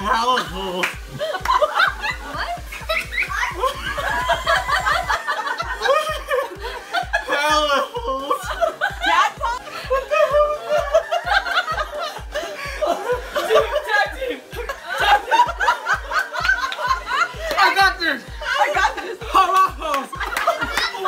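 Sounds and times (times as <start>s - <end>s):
background music with thumping beat: 0.0s - 21.0s
people laughing hard: 0.0s - 21.0s.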